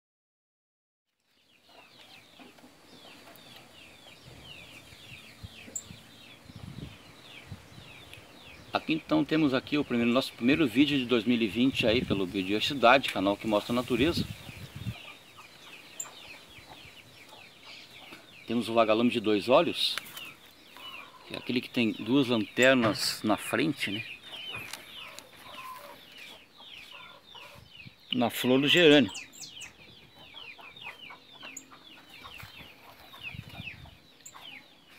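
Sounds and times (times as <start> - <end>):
birds chirping: 1.1 - 34.9
chicks peeping: 1.3 - 34.9.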